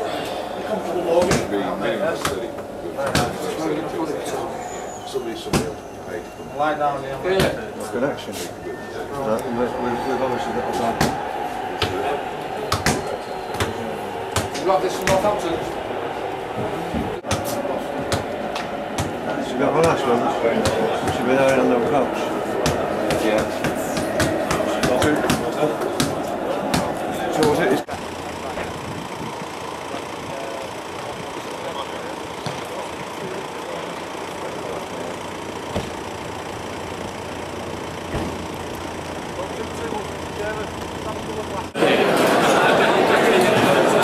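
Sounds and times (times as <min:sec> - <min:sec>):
coach road rumble: 0:00.0 - 0:44.0
car engine idling: 0:13.4 - 0:41.8.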